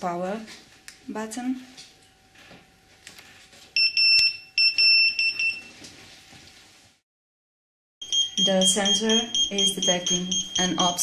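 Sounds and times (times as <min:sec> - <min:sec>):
high electronic beeps: 0:08.0 - 0:11.0.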